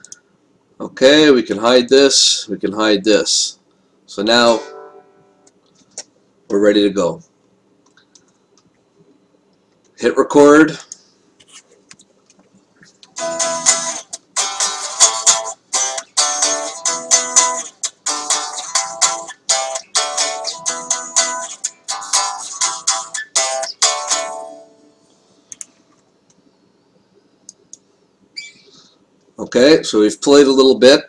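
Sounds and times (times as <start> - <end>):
electric guitar picking: 4.5 - 5.5, 13.1 - 25.1.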